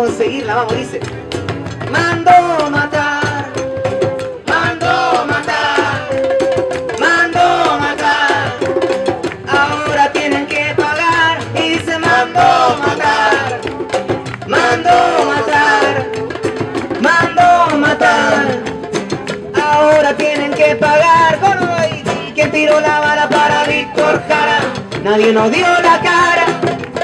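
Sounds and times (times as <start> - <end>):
hand drum struck with stick: 0.0 - 27.0
strummed acoustic guitars: 0.0 - 27.0
singing: 1.9 - 13.6, 14.5 - 16.2, 17.0 - 18.7, 19.6 - 26.8.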